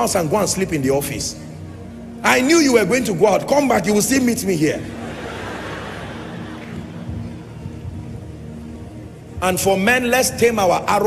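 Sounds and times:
soft music with held chords: 0.0s - 11.0s.

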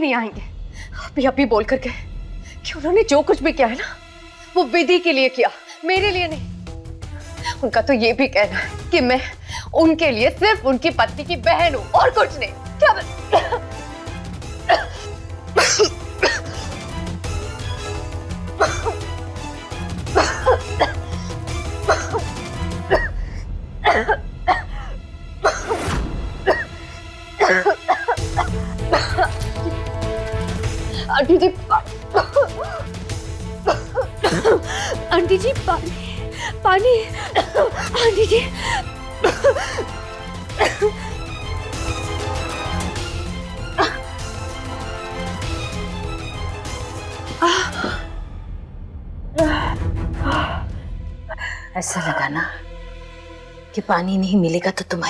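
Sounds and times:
dramatic background music: 0.0s - 55.0s
woman coughing: 12.8s - 13.8s, 14.6s - 16.7s, 18.6s - 19.1s, 20.1s - 22.3s, 22.9s - 23.2s, 23.8s - 26.8s, 27.4s - 29.8s, 31.0s - 32.9s, 33.6s - 35.8s, 37.0s - 41.0s, 43.8s - 44.1s, 47.4s - 48.1s.

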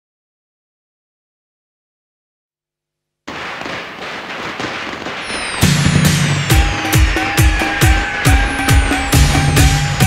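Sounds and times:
firecrackers crackling: 3.3s - 10.0s
festive music with drum hit: 5.0s - 10.0s
falling whistle: 5.1s - 10.0s.

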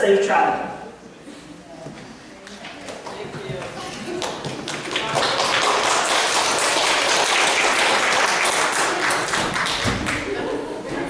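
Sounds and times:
crowd applauding: 4.1s - 10.4s.

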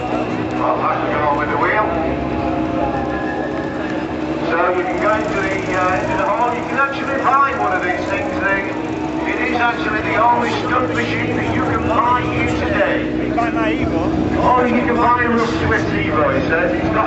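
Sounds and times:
motorcycle engine running: 0.0s - 17.0s
people talking: 0.0s - 17.0s.

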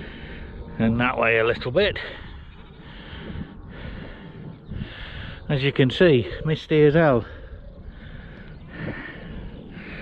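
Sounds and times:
man breathing: 0.0s - 0.8s, 2.0s - 5.5s, 7.2s - 10.0s
low wind rumble: 0.0s - 10.0s.

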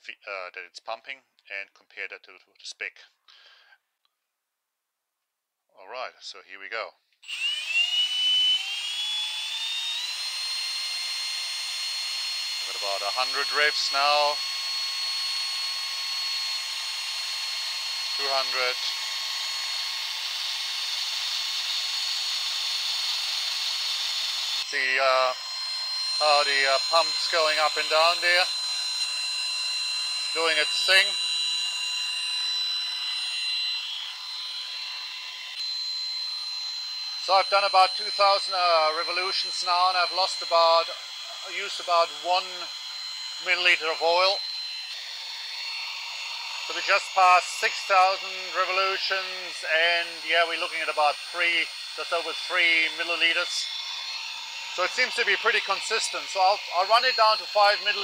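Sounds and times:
cordless drill whine: 7.2s - 58.0s.

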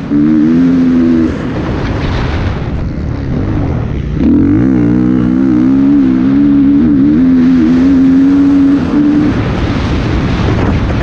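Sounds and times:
dirt bike engine revving: 0.0s - 11.0s
wind on microphone: 0.0s - 11.0s.

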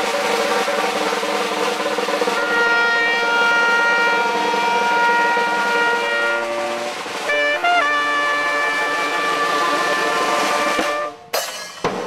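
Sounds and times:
snare drum roll: 0.0s - 12.0s
horns playing held chord: 2.2s - 11.3s.

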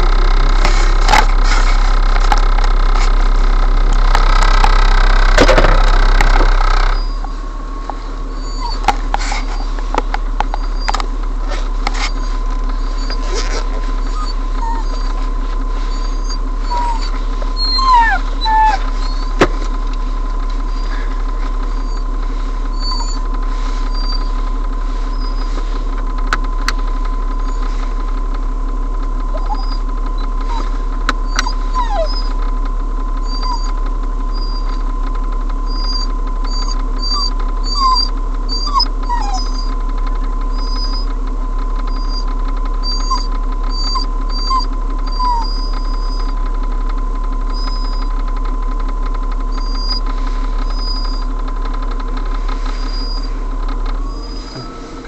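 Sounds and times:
steady tonal hum: 0.0s - 55.0s
falling squeaks: 4.0s - 7.3s, 8.4s - 9.8s, 40.5s - 41.1s, 42.9s - 46.4s, 49.6s - 51.3s, 52.6s - 53.4s.

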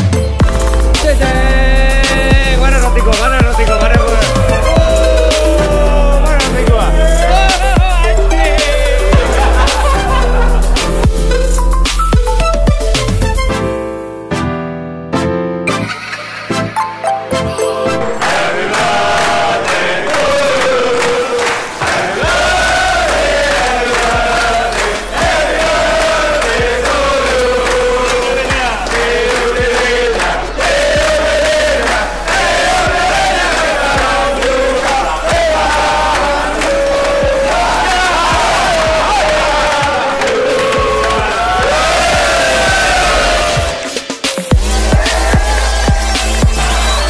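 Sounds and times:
hand clapping: 0.4s - 12.2s, 18.2s - 42.2s, 43.8s - 47.0s
men singing together: 1.0s - 10.8s, 17.6s - 44.0s.

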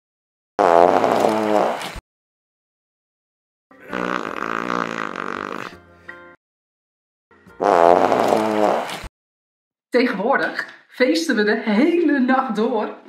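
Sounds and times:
buzzing fart sounds: 0.6s - 2.0s, 3.8s - 5.8s, 7.6s - 9.1s.

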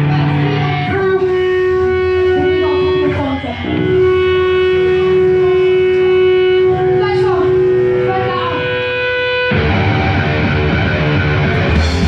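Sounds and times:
live punk band playing: 0.0s - 12.0s.

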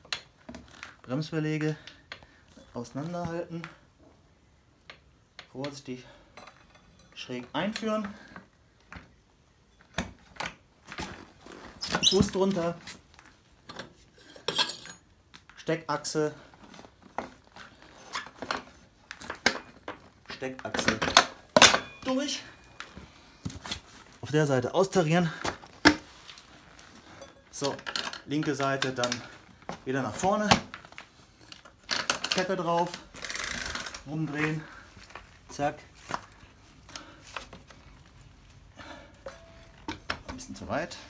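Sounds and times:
metallic clinks and knocks: 6.3s - 7.8s, 39.2s - 40.5s.

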